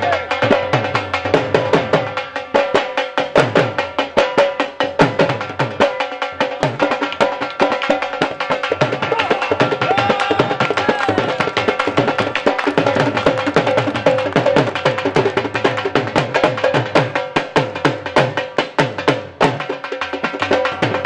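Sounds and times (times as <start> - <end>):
drums played with sticks: 0.0 - 21.0.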